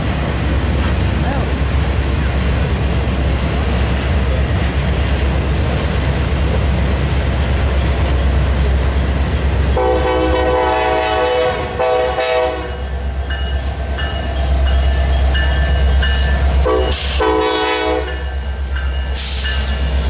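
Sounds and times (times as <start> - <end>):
train wheels rumbling on rail: 0.0 - 20.0
locomotive air horn: 9.8 - 12.8, 16.6 - 18.2.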